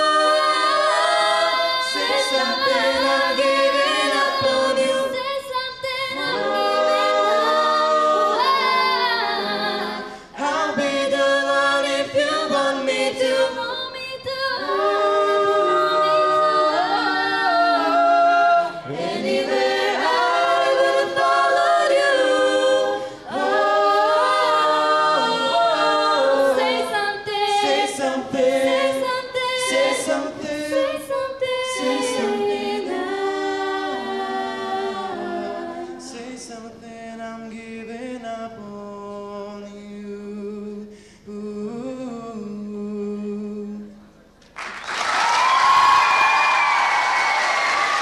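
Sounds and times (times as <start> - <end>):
a cappella group singing: 0.0 - 44.1.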